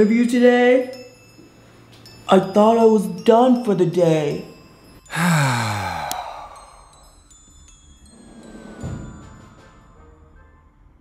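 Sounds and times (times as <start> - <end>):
person sighing heavily: 5.1 - 7.0.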